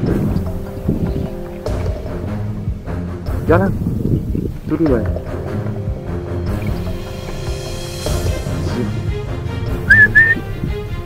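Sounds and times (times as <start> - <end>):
background music: 0.0 - 11.0
short whistled notes: 9.9 - 10.5.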